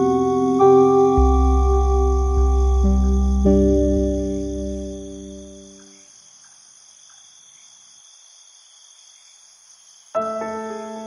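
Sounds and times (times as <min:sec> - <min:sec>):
sustained ambient chord: 0:00.0 - 0:05.9.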